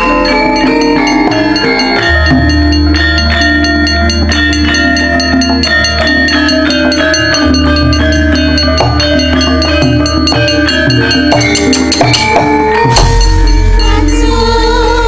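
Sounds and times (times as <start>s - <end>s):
deep held tone: 0.0s - 15.0s
gamelan metal bars struck: 0.0s - 15.0s.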